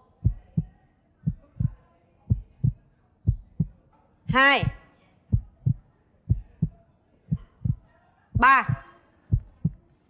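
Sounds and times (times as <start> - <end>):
heartbeat thumps: 0.0 - 9.8.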